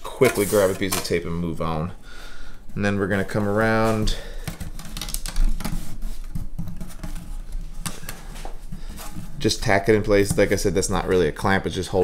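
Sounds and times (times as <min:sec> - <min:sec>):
tape crackling and clicking: 0:02.7 - 0:11.2.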